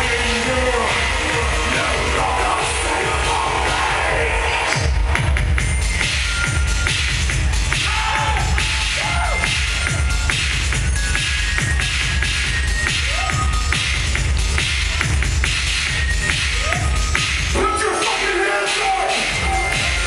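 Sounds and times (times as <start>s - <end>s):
electronic music with heavy bass: 0.0s - 20.0s.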